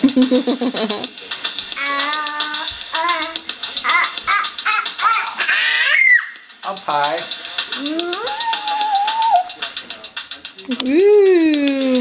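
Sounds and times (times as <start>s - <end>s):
girl shouting: 7.8s - 9.5s.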